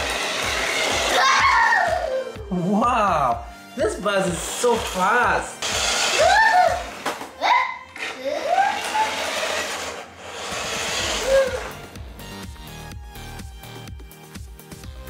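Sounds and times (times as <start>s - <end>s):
upbeat electronic music: 0.0s - 7.0s, 11.1s - 15.0s.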